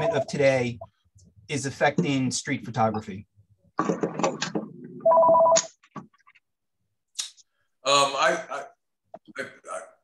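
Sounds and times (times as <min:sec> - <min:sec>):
electronic telephone ring: 0:05.0 - 0:05.6.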